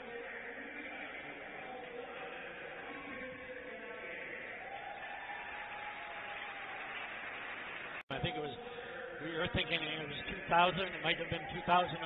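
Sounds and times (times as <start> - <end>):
echoing indistinct voices: 0.0 - 6.6, 8.1 - 12.0.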